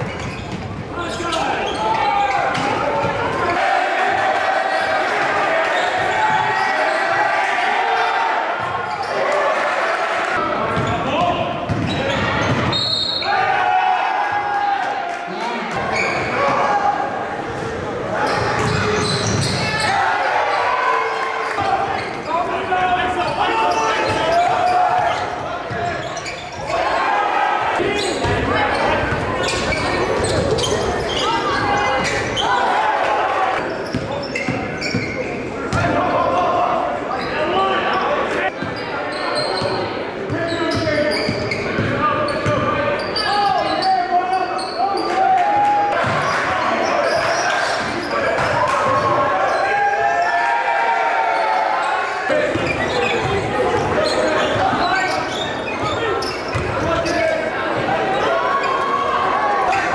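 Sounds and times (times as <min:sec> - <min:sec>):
basketball bouncing on court: 0:00.0 - 0:00.9, 0:10.7 - 0:12.8, 0:40.7 - 0:42.7, 0:46.0 - 0:46.3, 0:56.5 - 0:56.9
voices echoing in gym: 0:00.0 - 0:59.9.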